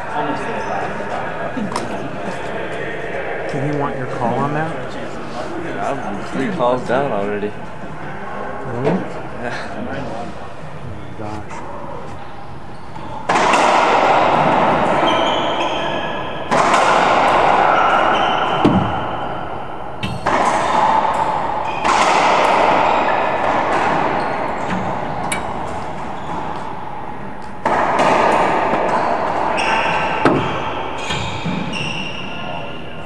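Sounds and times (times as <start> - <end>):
racquetball hitting racquets and walls: 12.8 - 33.0.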